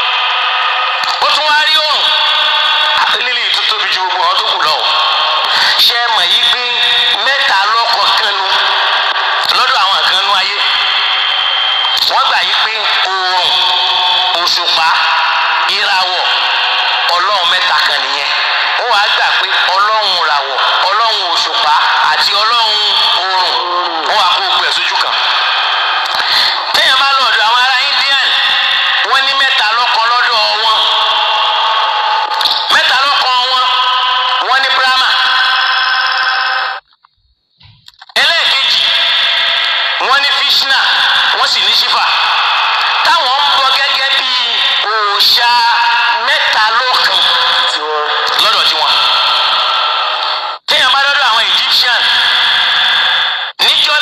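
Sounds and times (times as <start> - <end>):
tinny speech through loudspeaker: 0.0 - 36.8, 37.6 - 54.0.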